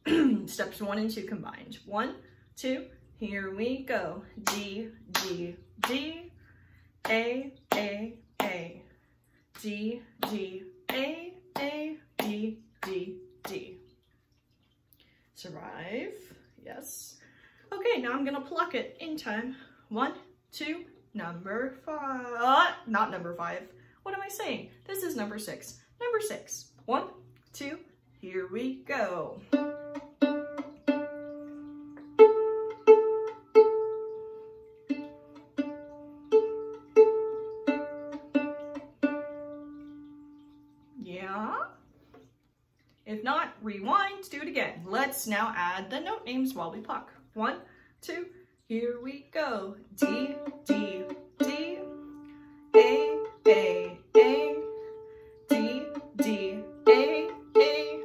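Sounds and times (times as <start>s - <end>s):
woman chanting: 0.1s - 6.4s, 7.0s - 8.9s, 9.6s - 13.8s, 43.1s - 52.0s, 52.7s - 54.9s, 55.5s - 58.0s
violin pizzicato plucks: 4.0s - 6.4s, 29.3s - 40.6s, 49.8s - 58.0s
hand claps: 4.4s - 6.0s.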